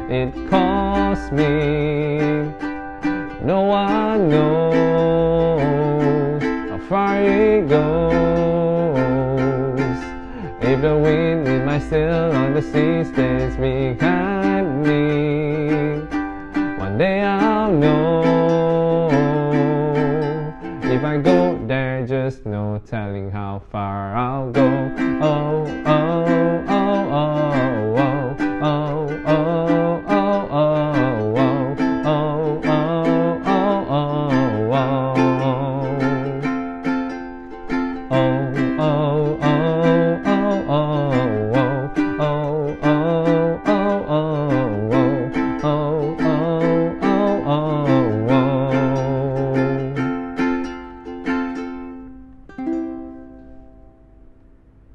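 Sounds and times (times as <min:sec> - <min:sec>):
man singing wordlessly: 0:00.0 - 0:37.0, 0:38.0 - 0:50.5
ukulele strumming: 0:00.0 - 0:54.9.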